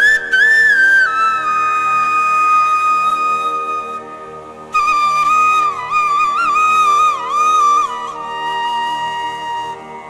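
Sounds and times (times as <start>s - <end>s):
flute playing ornamented melody: 0.0s - 10.0s
steady drone: 0.0s - 10.0s.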